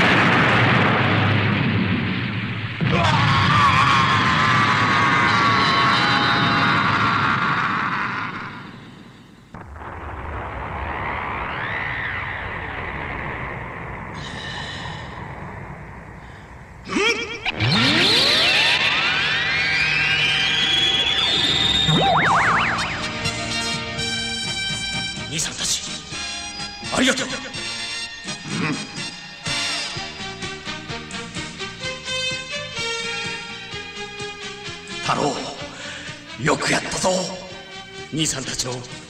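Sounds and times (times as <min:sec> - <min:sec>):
dense electronic effect: 0:08.5 - 0:28.5
rising pitch sweep: 0:17.1 - 0:25.3
warbling pitch glides: 0:17.2 - 0:23.8.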